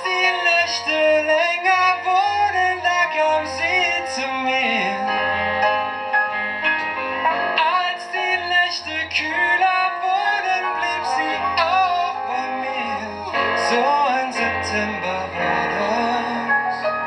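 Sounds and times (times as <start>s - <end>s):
man singing: 0.0s - 5.2s, 7.5s - 17.0s
piano chords: 0.0s - 17.0s
low bass notes: 0.1s - 17.0s.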